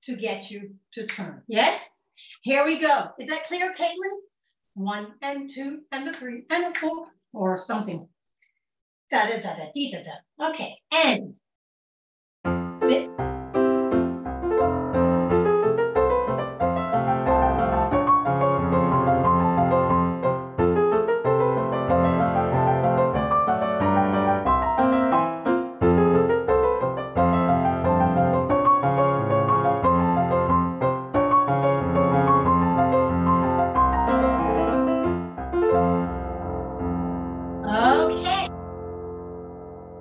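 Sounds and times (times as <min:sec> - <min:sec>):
solo piano playing: 0:12.5 - 0:40.0.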